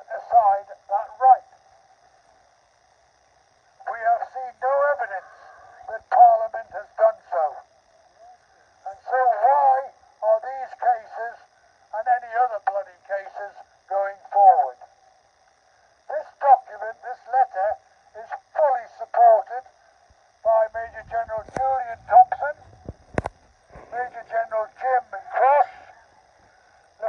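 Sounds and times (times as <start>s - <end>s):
man speaking through megaphone: 0.0s - 1.5s, 3.8s - 7.6s, 8.8s - 14.9s, 16.1s - 19.7s, 20.4s - 22.8s, 23.8s - 26.0s.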